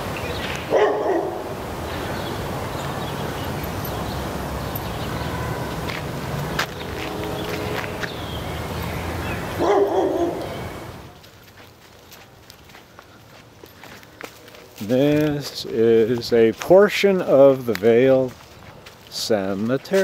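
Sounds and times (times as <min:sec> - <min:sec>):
dog barking: 0:00.7 - 0:01.5, 0:09.6 - 0:10.5.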